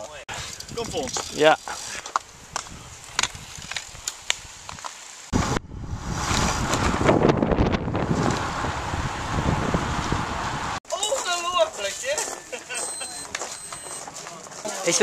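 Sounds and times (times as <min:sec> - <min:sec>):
road noise: 0:00.1 - 0:15.0
wind over microphone: 0:00.3 - 0:10.8.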